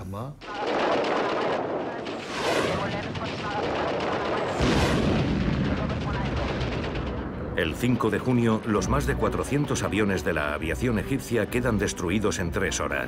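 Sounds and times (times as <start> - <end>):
gunfire and blasts: 0.4 - 9.3
deep rumble: 1.7 - 9.3.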